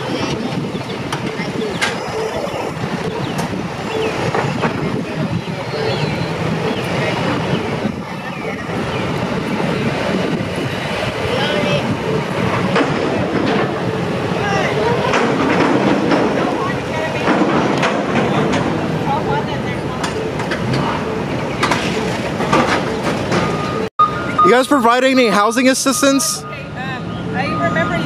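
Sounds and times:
heavy trucks running: 0:00.0 - 0:28.0
indistinct voices: 0:00.0 - 0:28.0
wheel loader running: 0:00.0 - 0:28.0
knocks and clanks: 0:12.0 - 0:14.1, 0:15.0 - 0:16.6, 0:17.2 - 0:19.0, 0:20.0 - 0:23.9.

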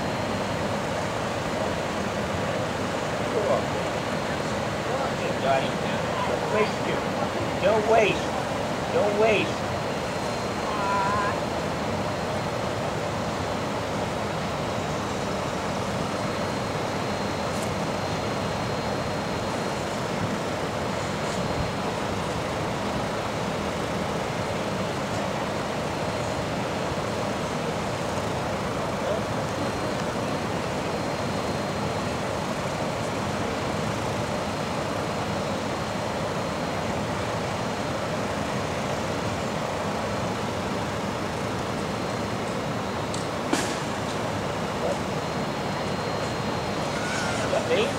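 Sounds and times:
distant traffic: 0:00.0 - 0:36.1, 0:38.1 - 0:47.9
faint high whine: 0:00.0 - 0:47.9.

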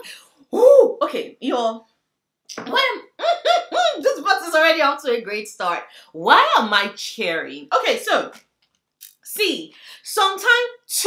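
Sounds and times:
woman cheering and squealing: 0:02.7 - 0:04.2.

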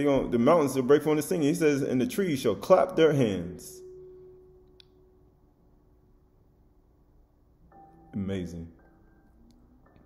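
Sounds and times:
faint steady tone: 0:03.2 - 0:10.0.

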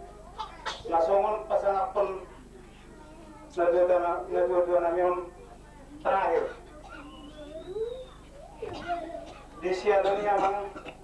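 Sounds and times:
faint wavering cry: 0:06.8 - 0:09.2.

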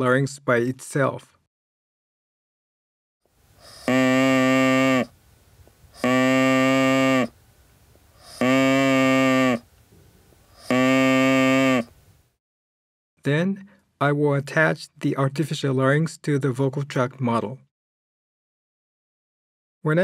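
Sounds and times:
artificial larynx buzzing tones: 0:03.6 - 0:05.2, 0:05.9 - 0:07.4, 0:08.2 - 0:09.7, 0:10.5 - 0:12.0.

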